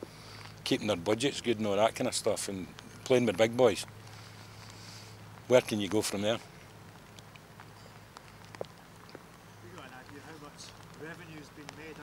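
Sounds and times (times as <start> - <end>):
faint ticks: 6.5 - 12.0.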